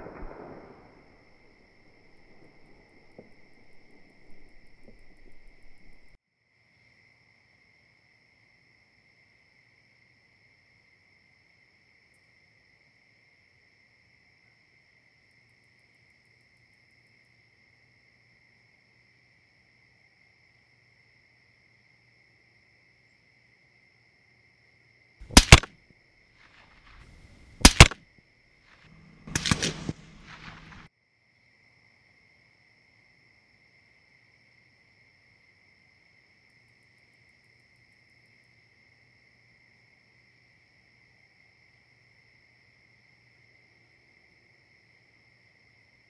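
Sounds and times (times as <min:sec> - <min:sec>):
rifle shots: 0:00.0 - 0:06.1, 0:25.3 - 0:25.7, 0:27.5 - 0:28.0, 0:28.9 - 0:30.9
rough burst of sound: 0:28.9 - 0:30.9.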